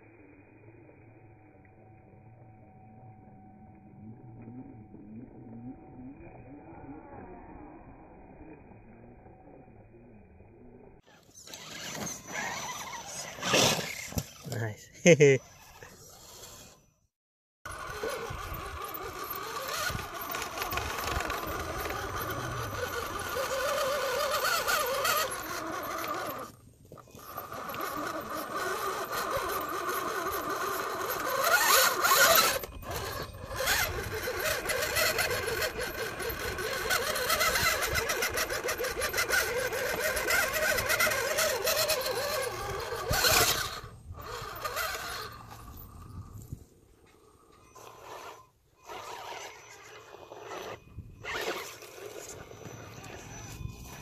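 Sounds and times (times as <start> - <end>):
electric motor whining: 3.8 - 14.5, 17.7 - 54.0.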